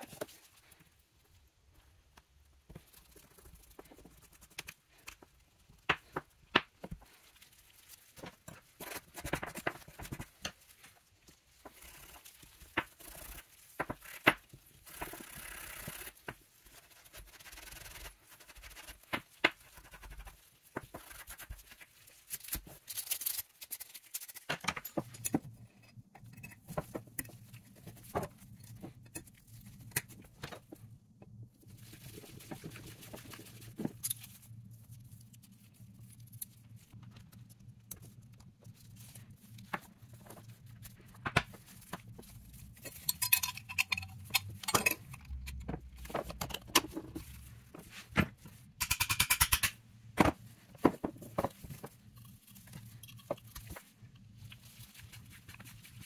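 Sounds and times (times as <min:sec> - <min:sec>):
scrubbing and scraping metal parts: 0:08.1 - 0:30.9, 0:31.8 - 0:34.7, 0:39.1 - 0:54.5
metal clicks and taps: 0:48.8 - 0:49.8.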